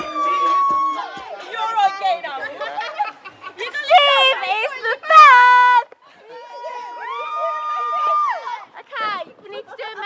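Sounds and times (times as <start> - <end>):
excited group chatter: 0.0 - 10.0.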